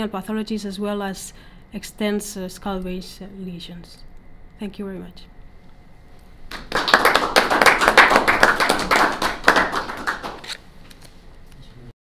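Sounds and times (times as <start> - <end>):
audience applause: 6.5 - 10.4.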